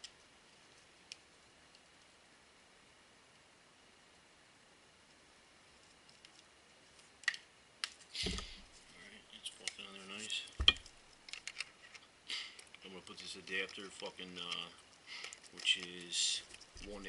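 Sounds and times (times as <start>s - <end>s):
small clicks and handling noises: 0.0s - 2.2s, 5.8s - 17.0s.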